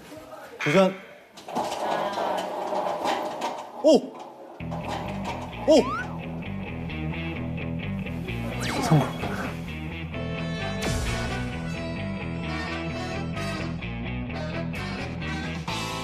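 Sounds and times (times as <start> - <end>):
background music with steady beat: 5.4 - 16.0.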